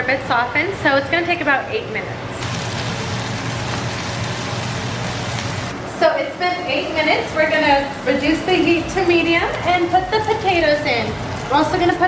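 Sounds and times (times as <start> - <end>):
vegetables sizzling in hot oil: 2.4 - 5.8, 7.2 - 12.0.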